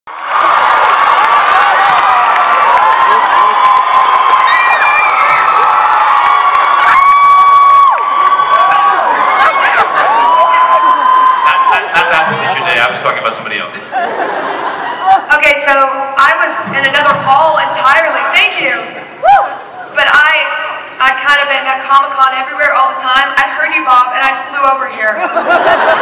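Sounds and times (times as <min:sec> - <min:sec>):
audience screaming and cheering: 0:00.1 - 0:15.3, 0:18.7 - 0:20.0.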